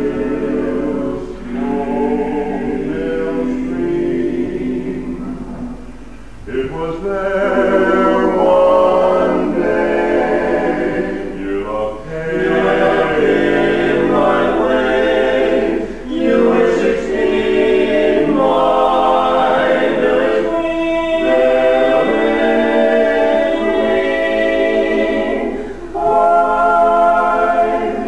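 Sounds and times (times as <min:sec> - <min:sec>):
male quartet singing a cappella: 0:00.0 - 0:05.8, 0:06.4 - 0:28.0.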